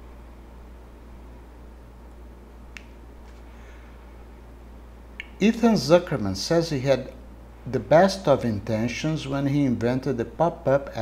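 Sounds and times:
low electrical hum: 0.0s - 11.0s
sharp click: 5.2s - 5.4s.

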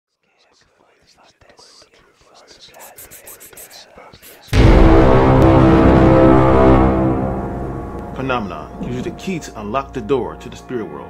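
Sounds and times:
faint whispering voices: 0.1s - 4.6s.

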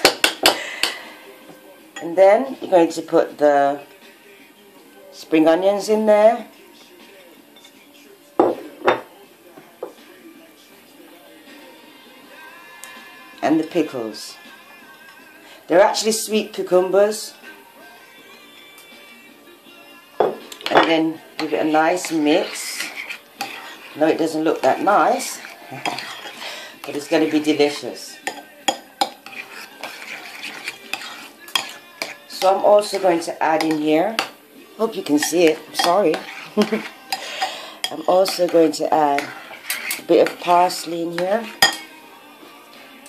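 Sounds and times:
ceramic dishes knocking together: 8.4s - 9.1s, 20.2s - 21.0s
spoon stirring thick dressing: 9.4s - 42.9s
spoon clinking against ceramic bowl: 25.3s - 27.1s, 27.7s - 33.0s, 35.1s - 38.5s, 41.5s - 42.0s.

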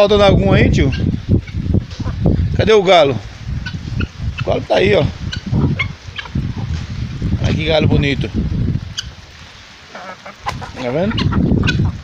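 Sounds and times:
chickens clucking: 0.4s - 12.0s.

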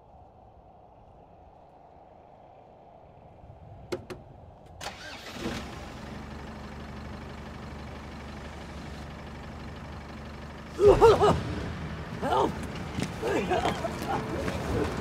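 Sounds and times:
engine cranking: 4.8s - 15.0s
van engine idling: 4.8s - 15.0s.

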